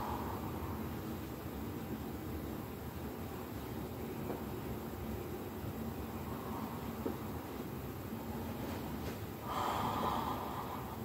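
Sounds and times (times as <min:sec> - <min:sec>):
heavy breath: 0:09.4 - 0:11.0.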